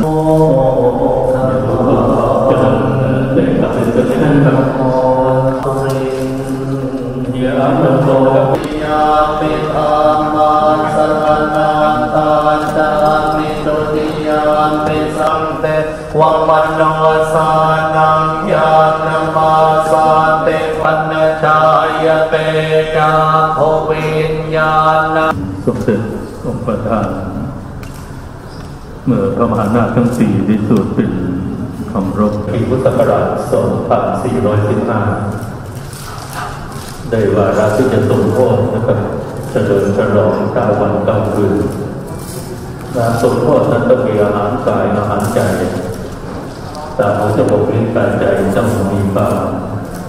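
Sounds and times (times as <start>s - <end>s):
monks chanting in monotone: 0.0s - 27.7s, 29.0s - 50.0s.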